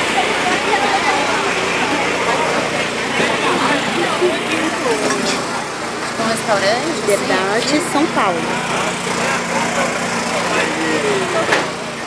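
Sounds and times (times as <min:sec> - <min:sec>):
city street noise: 0:00.0 - 0:12.0
crowd voices talking: 0:00.0 - 0:12.0.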